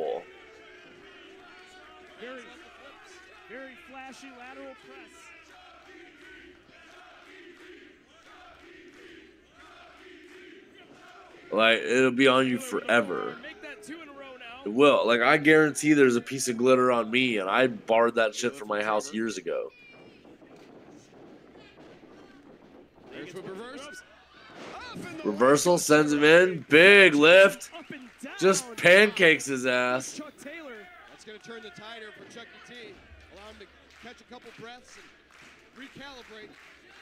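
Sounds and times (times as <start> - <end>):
crowd chanting: 4.5 - 16.2, 23.4 - 30.5.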